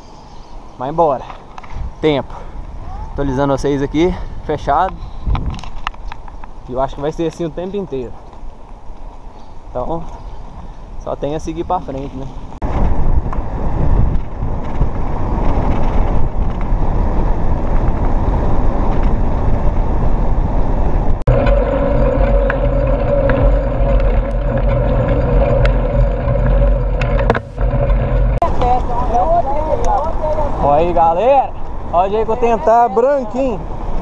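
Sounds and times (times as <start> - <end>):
wind buffeting microphone: 1.5 - 7.0, 7.6 - 34.0
steady hum: 21.2 - 29.6.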